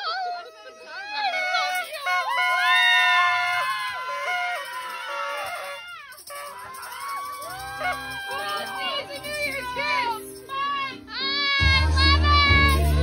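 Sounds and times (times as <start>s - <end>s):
backing music: 7.6s - 13.0s.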